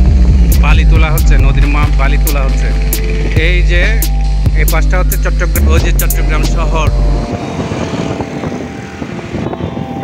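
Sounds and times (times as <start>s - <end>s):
vehicle engine and tyre noise: 0.0s - 10.0s
pickup truck passing: 1.9s - 10.0s.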